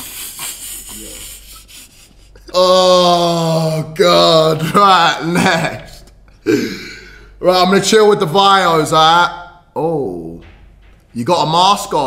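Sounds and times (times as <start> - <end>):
phone microphone rubbing on clothing: 0.0 - 2.4.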